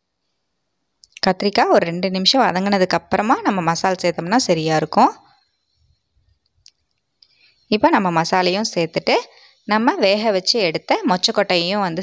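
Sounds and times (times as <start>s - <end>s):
person speaking: 1.1s - 5.2s, 7.7s - 12.0s.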